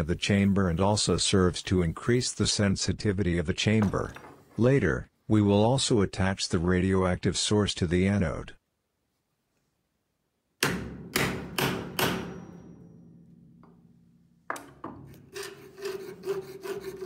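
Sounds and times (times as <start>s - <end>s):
sharp knocks: 10.6s - 12.8s
fretsaw cutting brass sheet: 15.2s - 17.0s.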